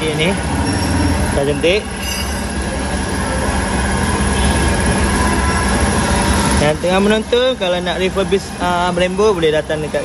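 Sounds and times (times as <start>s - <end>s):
machinery rumbling: 0.0s - 8.9s.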